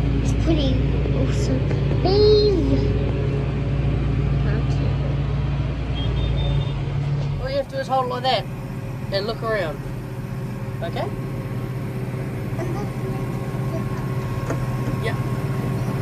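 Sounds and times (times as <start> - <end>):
tractor engine running: 0.0 - 16.0
child calling: 2.0 - 2.9.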